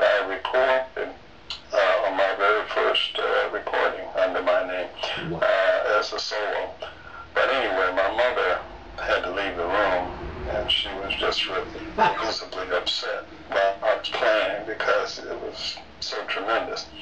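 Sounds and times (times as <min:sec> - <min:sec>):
man talking over internet call: 0:00.0 - 0:17.0.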